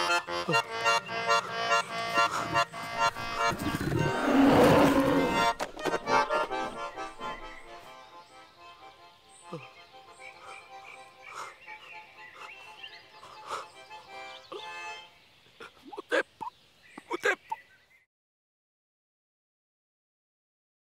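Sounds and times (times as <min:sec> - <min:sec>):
accordion playing lively tune: 0:00.0 - 0:15.2.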